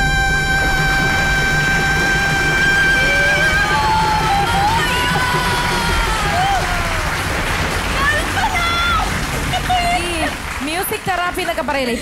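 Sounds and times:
woman singing a long high note: 0:00.0 - 0:06.7.

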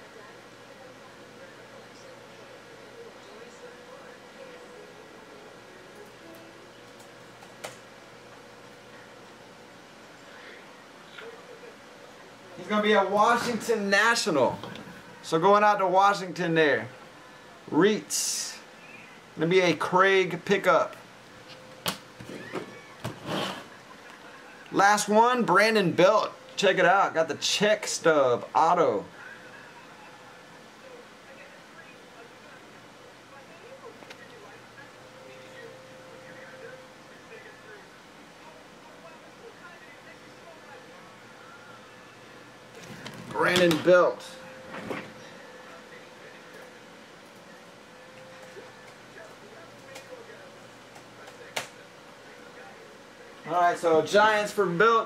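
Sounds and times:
faint steady hum: 0:00.0 - 0:55.0.

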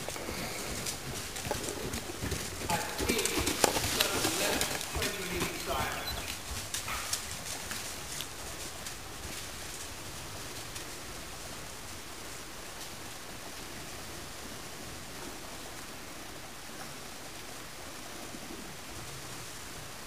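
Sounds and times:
horse hoofbeats on sand: 0:00.0 - 0:15.6
person's voice: 0:02.7 - 0:06.3.

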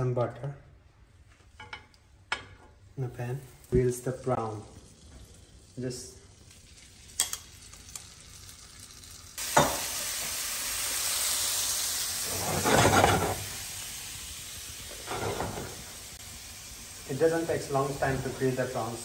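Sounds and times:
prawns sizzling in butter: 0:03.0 - 0:19.0.

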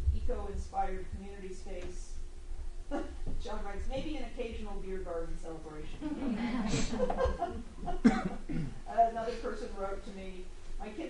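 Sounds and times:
sharp cough: 0:07.9 - 0:08.8.

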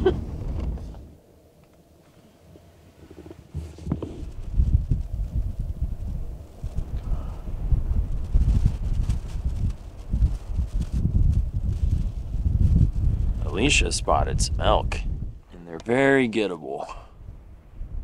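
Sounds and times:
wind buffeting microphone: 0:00.0 - 0:01.2, 0:03.2 - 0:16.2, 0:17.0 - 0:18.0.

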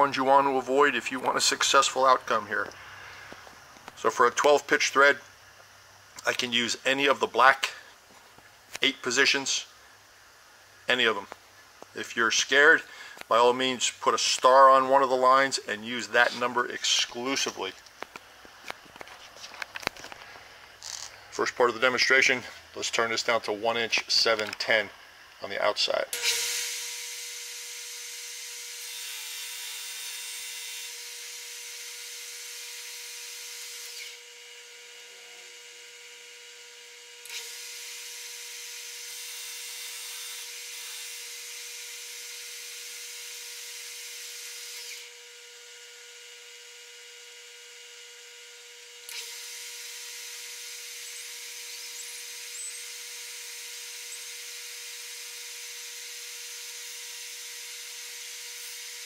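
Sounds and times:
cutting tool hiss: 0:25.6 - 0:45.6, 0:48.1 - 0:59.0
metal lathe whine: 0:26.2 - 0:59.0.

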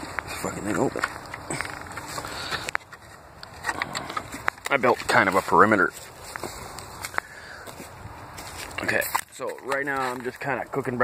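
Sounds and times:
footsteps on dry leaves: 0:00.0 - 0:10.5.

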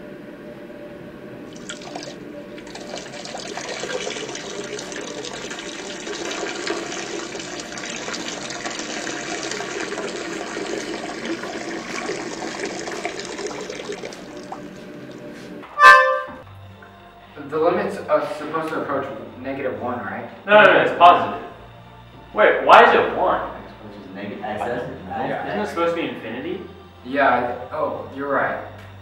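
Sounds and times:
person urinating into urinal: 0:01.5 - 0:15.3.

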